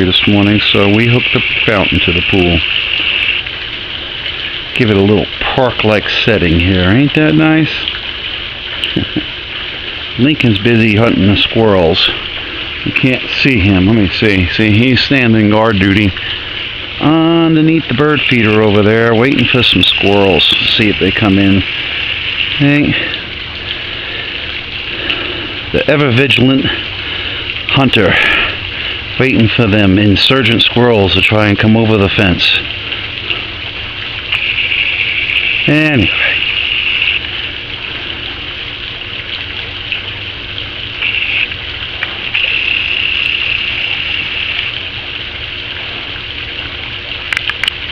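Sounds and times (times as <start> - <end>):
fountain spray splashing: 0.0 - 47.9.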